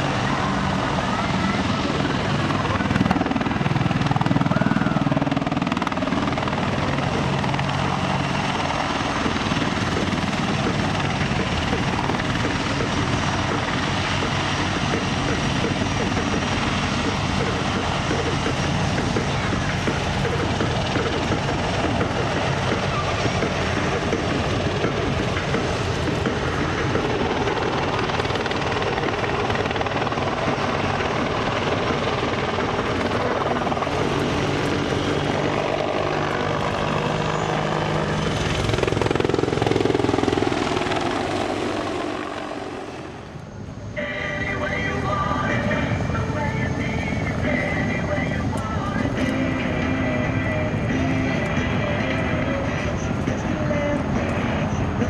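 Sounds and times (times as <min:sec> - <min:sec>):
helicopter flying overhead: 0:00.0 - 0:55.0.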